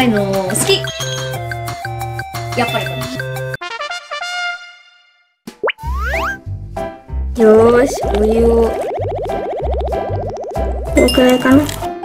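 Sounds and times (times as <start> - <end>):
upbeat children's music: 0.0 - 3.8, 5.5 - 12.0
cartoon rising pop: 5.5 - 6.4, 7.9 - 11.0
cartoon rising whistle: 5.7 - 6.4, 8.0 - 11.1.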